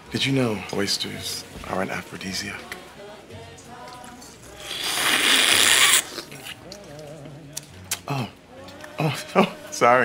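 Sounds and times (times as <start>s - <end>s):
wet slurp of oyster: 4.6s - 7.2s.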